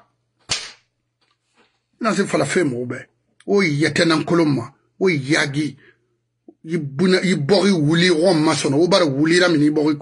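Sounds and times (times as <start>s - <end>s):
sharp smack: 0.4s - 0.9s.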